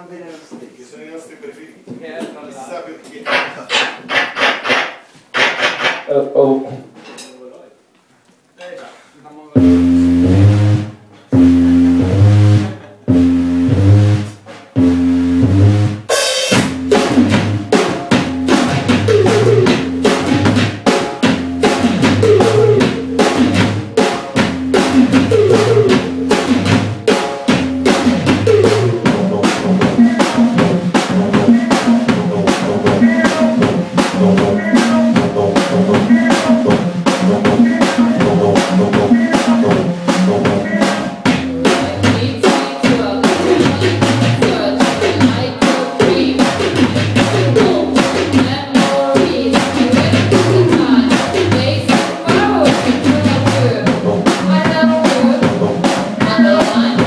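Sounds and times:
drum kit kick and snare: 3.3 - 6.1, 9.6 - 57.0
repeating synth bass line: 9.6 - 20.6, 21.4 - 27.0, 27.6 - 42.0
loud held synth chords: 9.6 - 42.1.

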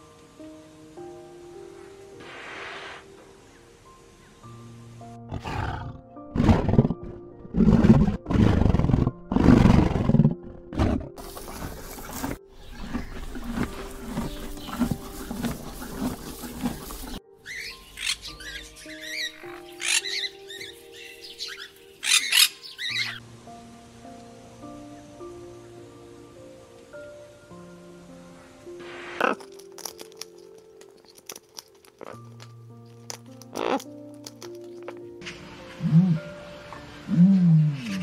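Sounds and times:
background music: 0.0 - 38.0
big cat roaring: 5.3 - 11.2
high chirping calls: 17.1 - 23.2.

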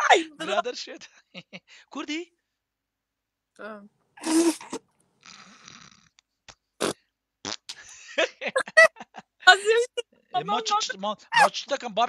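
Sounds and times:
laughter: 0.0 - 1.7, 7.8 - 10.0
voices and vocal noises: 9.4 - 12.0.

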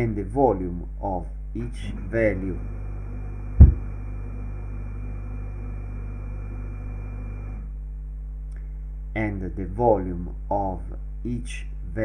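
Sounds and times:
low electrical hum: 0.0 - 12.0
loud thump: 3.6 - 3.9.

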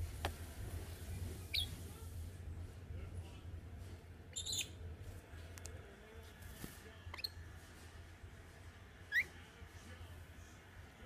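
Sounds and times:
bird giving high chirps: 1.5 - 1.8, 4.4 - 4.8.

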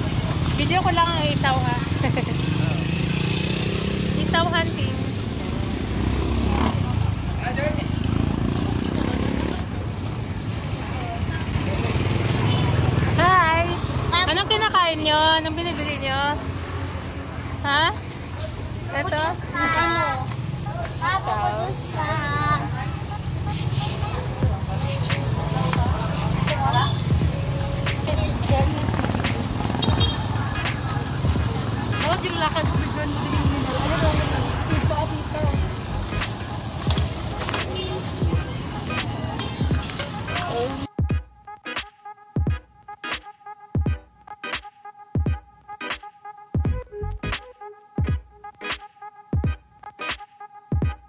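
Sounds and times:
motorcycle engine running: 0.0 - 19.2, 23.1 - 40.2
street noise: 0.0 - 51.0
scattered voices: 0.2 - 40.9
music: 13.2 - 16.5, 17.6 - 51.0.

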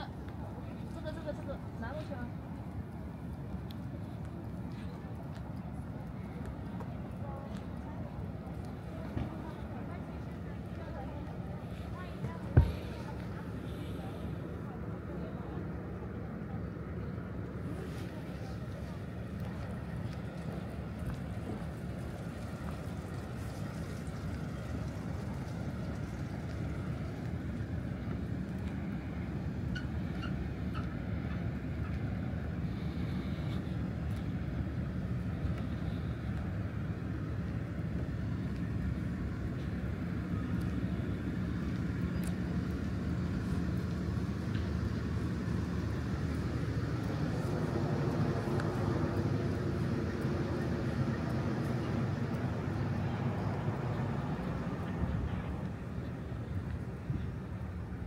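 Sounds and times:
vehicle engines rumbling: 0.0 - 58.0.

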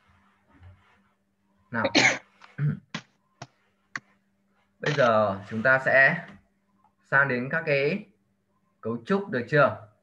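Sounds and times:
person speaking: 4.8 - 6.4.

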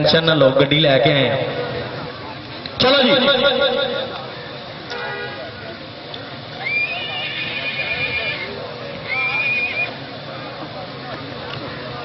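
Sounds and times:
high whistle-like tones: 6.6 - 10.0.

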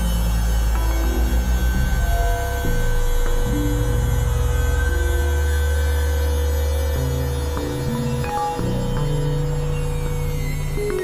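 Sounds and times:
deep buzzing synthesizer drone: 0.0 - 11.0.

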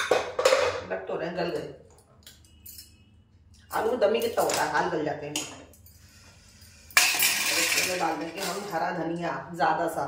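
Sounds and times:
metal utensils and dishes clattering: 0.0 - 0.8, 6.8 - 9.0
metallic kitchenware clink: 6.9 - 8.8.

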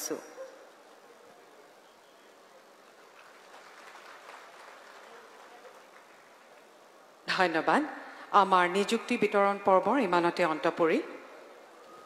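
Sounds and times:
faint audience applause: 2.6 - 7.2.

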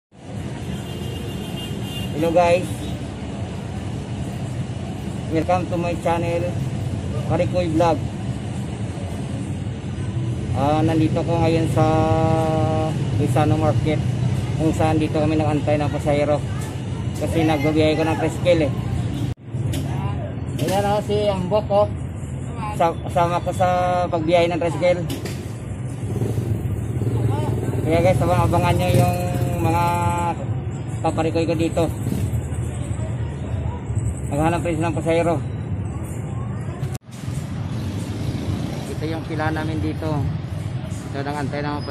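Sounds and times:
street traffic rumble: 0.1 - 41.9
motorcycles: 0.2 - 41.9.

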